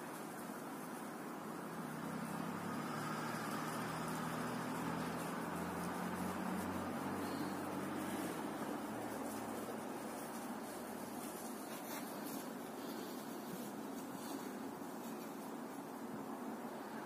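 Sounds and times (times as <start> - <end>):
outdoor background noise: 0.0 - 17.0.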